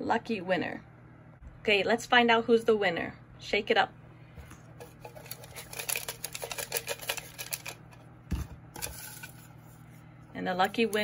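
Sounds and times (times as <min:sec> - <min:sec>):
paper slips rattling in glass jar: 0:04.8 - 0:07.8, 0:08.8 - 0:09.5.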